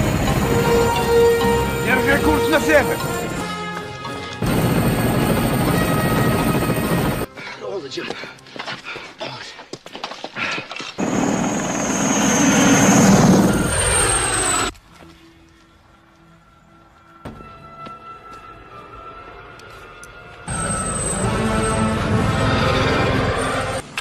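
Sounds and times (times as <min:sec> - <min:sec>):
helicopter: 0:00.0 - 0:03.5, 0:04.3 - 0:07.3, 0:11.0 - 0:14.7
background music: 0:00.0 - 0:09.3, 0:14.8 - 0:24.0
loud bursts of noise: 0:11.0 - 0:14.7.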